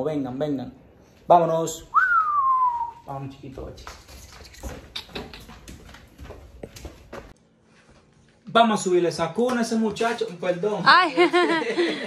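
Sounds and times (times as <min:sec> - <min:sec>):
footsteps on hard floor: 0:03.4 - 0:08.4.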